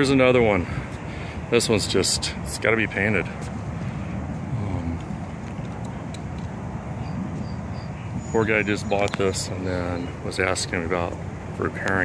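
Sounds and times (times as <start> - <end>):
outdoor background rumble and hiss: 0.0 - 12.0.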